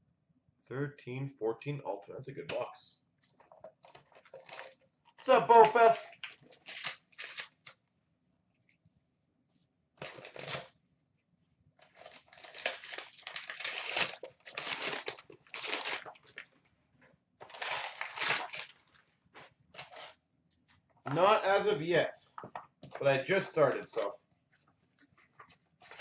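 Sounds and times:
wrapping paper tearing and crumpling: 0:04.1 - 0:07.8, 0:10.0 - 0:10.7, 0:11.8 - 0:16.5, 0:17.4 - 0:20.2.

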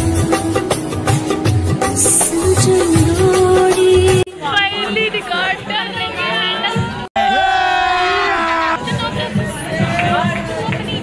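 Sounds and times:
music: 0:00.0 - 0:07.1, 0:08.8 - 0:11.0
people chattering: 0:03.6 - 0:11.0
women shouting a cheer: 0:06.8 - 0:10.4.

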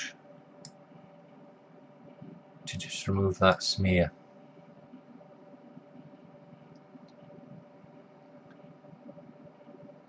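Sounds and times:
low steady hum and hiss: 0:00.0 - 0:10.0.

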